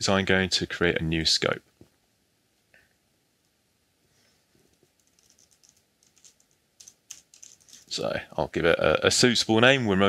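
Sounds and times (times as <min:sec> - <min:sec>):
typing on computer keyboard: 0:05.0 - 0:07.9.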